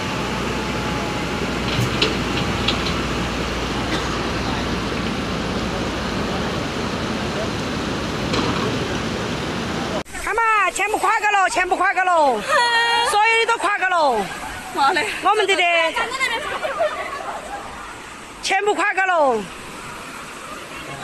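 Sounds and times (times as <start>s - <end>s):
floodwater rushing: 0.0s - 21.0s.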